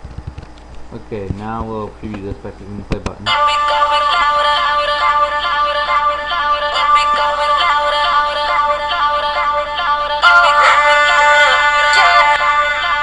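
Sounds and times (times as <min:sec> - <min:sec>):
electronic song with vocals: 0:03.3 - 0:13.0.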